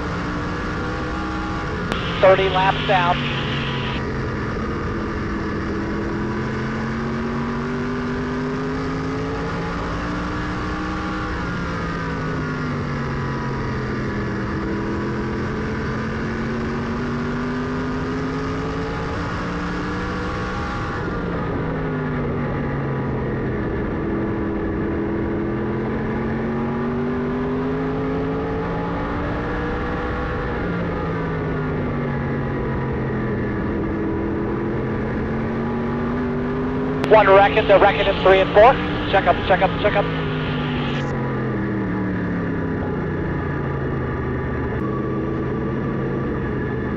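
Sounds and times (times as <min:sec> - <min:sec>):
race car engine: 0:00.0 - 0:21.6.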